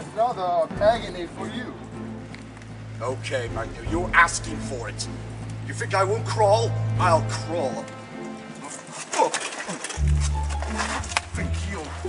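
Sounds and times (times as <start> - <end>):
music with deep bass line: 0.7 - 8.6, 10.0 - 12.0.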